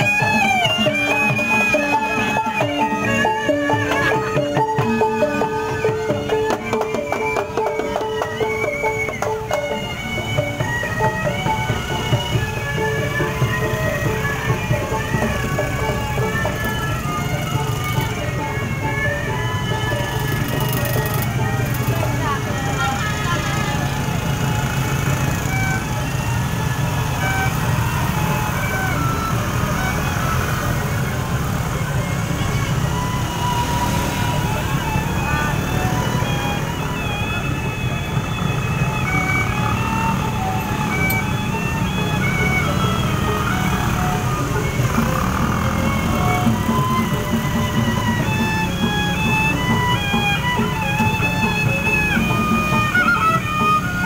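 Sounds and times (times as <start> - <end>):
crowd voices: 0.0 - 54.0
motorbike engines running: 0.0 - 54.0
procession music: 0.0 - 54.0.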